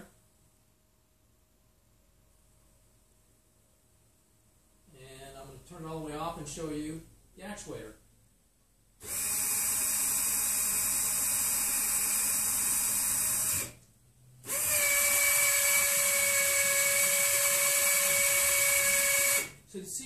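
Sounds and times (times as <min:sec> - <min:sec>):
electric actuator whining: 0:09.0 - 0:19.6.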